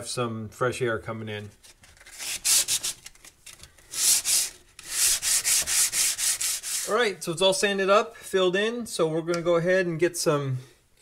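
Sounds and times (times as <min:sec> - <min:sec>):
sandpaper rubbing on wood filler: 0:02.1 - 0:03.0, 0:03.9 - 0:07.1.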